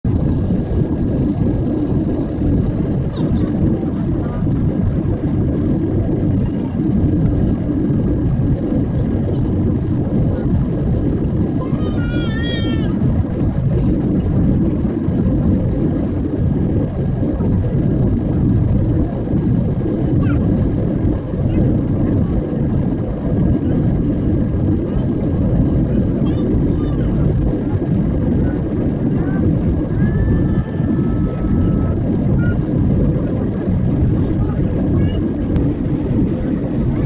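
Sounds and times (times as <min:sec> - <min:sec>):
jet engine rumble in cabin: 0:00.0 - 0:37.0
high-pitched voice: 0:11.6 - 0:13.0, 0:26.0 - 0:27.3, 0:29.2 - 0:32.7.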